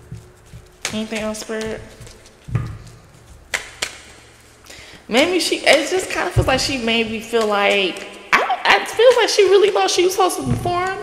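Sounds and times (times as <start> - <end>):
cards being shuffled: 0.1 - 4.6
sharp card snaps: 3.5 - 4.2.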